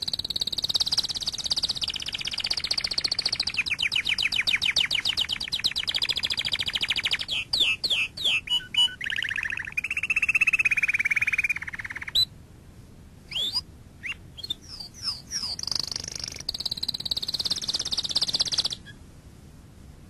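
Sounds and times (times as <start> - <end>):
animal chirps falling in pitch: 0.0 - 12.3, 13.3 - 19.0.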